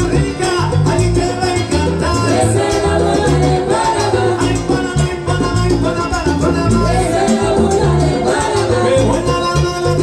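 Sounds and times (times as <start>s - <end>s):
bass line: 0.0s - 10.0s
salsa band playing live: 0.0s - 10.0s.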